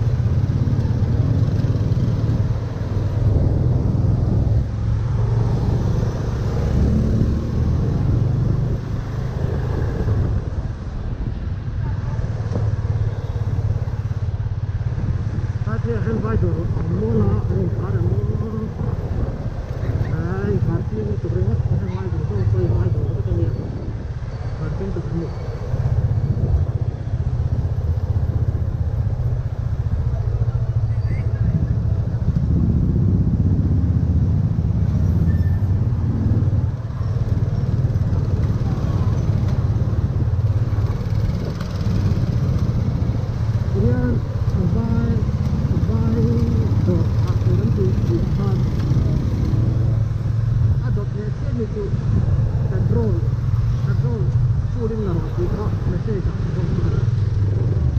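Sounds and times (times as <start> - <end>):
motorcycle engine running: 25.7 - 57.9
indistinct voices: 43.7 - 50.0.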